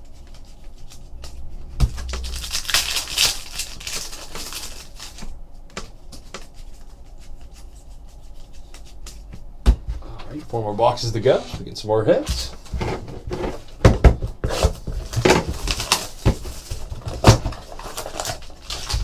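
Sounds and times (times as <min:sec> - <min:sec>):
foil wrapper tearing and crinkling: 0:02.0 - 0:05.3, 0:14.5 - 0:19.0.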